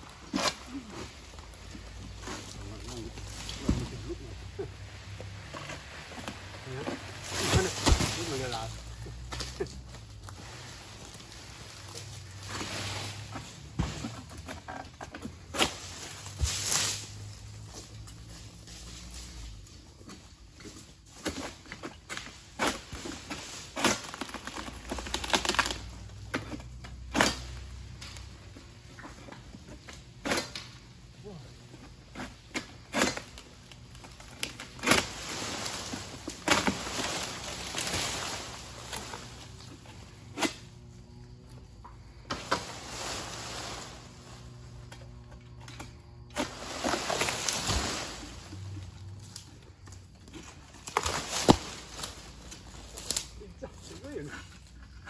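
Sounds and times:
fronds swishing: 0:00.0 - 0:14.4, 0:15.4 - 0:19.9, 0:33.1 - 0:41.2, 0:42.1 - 0:45.2, 0:46.2 - 0:54.3
palm frond crackling and snapping: 0:00.0 - 0:55.0.

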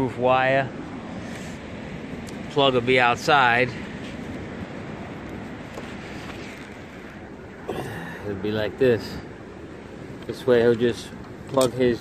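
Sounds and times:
low outdoor rumble and hiss: 0:00.0 - 0:12.0.

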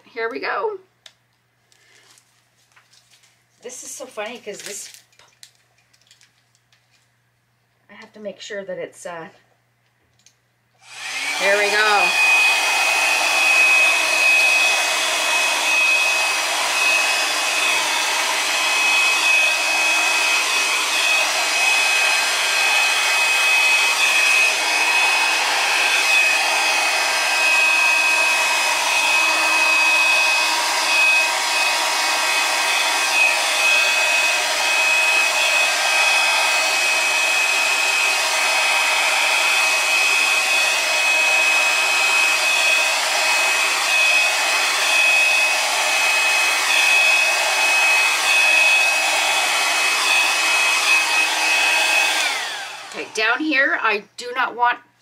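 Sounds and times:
hair dryer running: 0:10.8 - 0:53.6.

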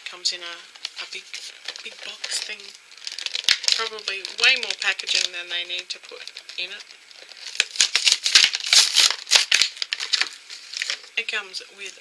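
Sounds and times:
toy packaging rattling and crinkling: 0:00.7 - 0:11.2.

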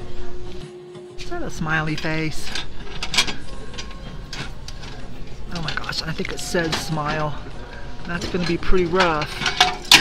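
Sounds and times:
metal knocking and scraping: 0:01.7 - 0:10.0.

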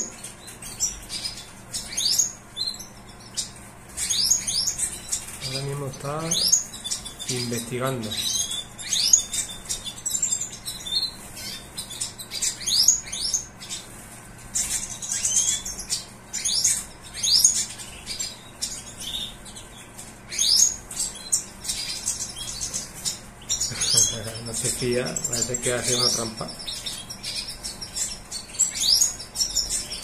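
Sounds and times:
finches twittering chirps: 0:00.0 - 0:30.0.

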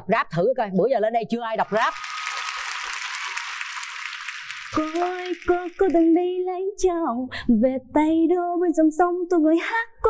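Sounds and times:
audience applauding: 0:01.6 - 0:06.3.

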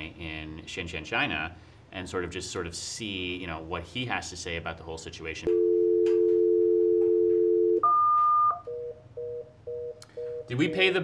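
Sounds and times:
high beep: 0:07.6 - 0:10.7.

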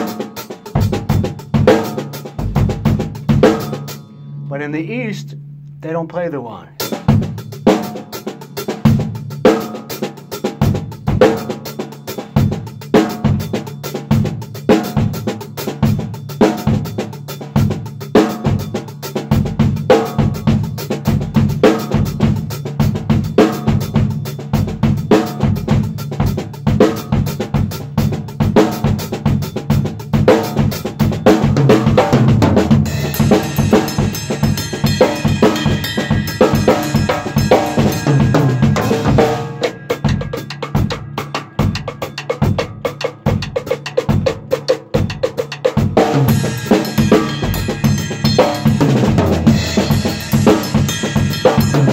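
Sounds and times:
drum kit groove: 0:00.0 - 0:51.9
cymbal wash: 0:32.9 - 0:40.6, 0:46.3 - 0:51.9.

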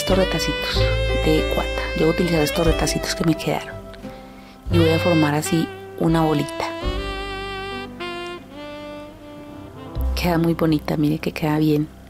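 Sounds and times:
bowed strings sustained notes: 0:00.0 - 0:07.2.

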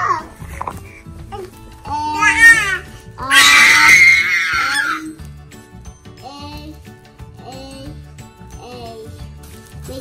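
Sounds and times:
baby squealing: 0:02.0 - 0:05.1.

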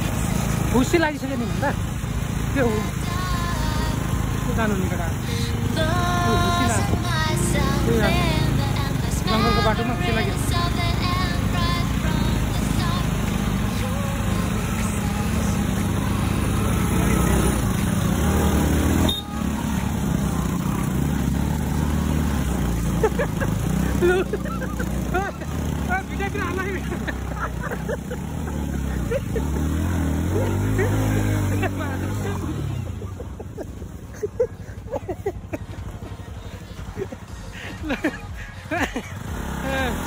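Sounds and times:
people's voices: 0:00.0 - 0:21.4, 0:22.2 - 0:40.0
motorcycle engines at low speed: 0:00.0 - 0:40.0.

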